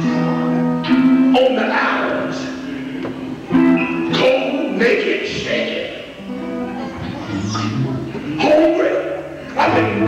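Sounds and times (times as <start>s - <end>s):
guitar-like held chords: 0.0s - 10.0s.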